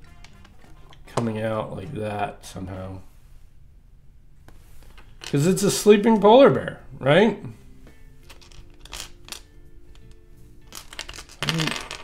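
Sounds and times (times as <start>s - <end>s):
faint background music: 0.0s - 3.7s, 4.5s - 12.0s
plastic bricks clicking and clattering: 8.2s - 12.0s.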